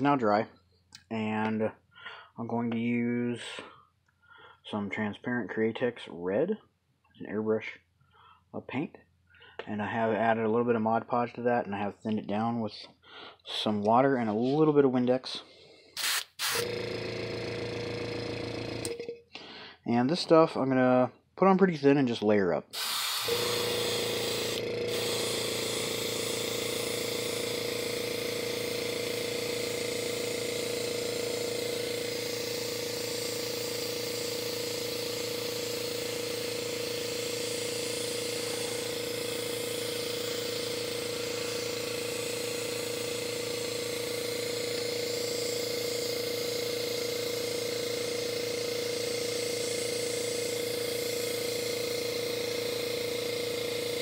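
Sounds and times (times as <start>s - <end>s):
airbrush spraying hiss: 16.0s - 16.6s
compressor humming and pulsing: 16.0s - 19.6s, 22.8s - 54.0s.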